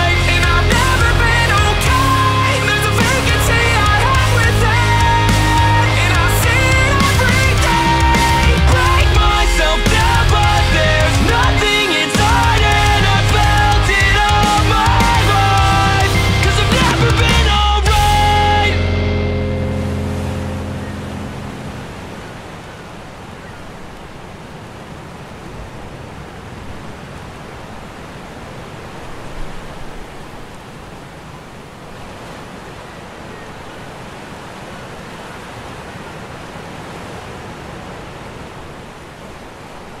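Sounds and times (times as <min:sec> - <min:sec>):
ocean surf breaking on beach: 0:00.0 - 0:16.1, 0:17.0 - 0:40.0
rock song chord ringing: 0:00.0 - 0:21.9.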